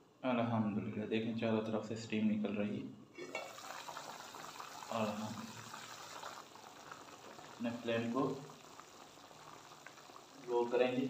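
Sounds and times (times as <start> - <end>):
curry bubbling in a pot: 3.2 - 11.0.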